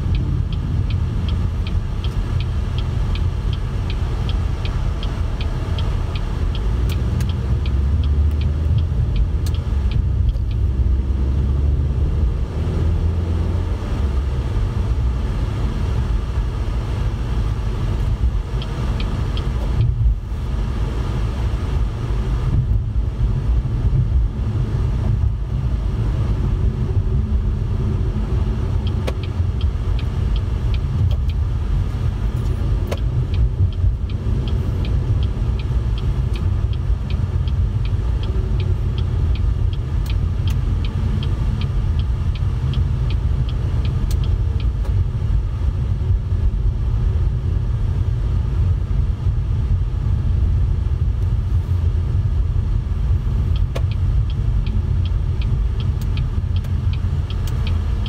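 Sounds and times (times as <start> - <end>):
light regular ticking: 0.0 - 12.0, 13.8 - 22.0, 26.2 - 47.4, 51.2 - 58.0
car road and engine rumble: 0.0 - 58.0.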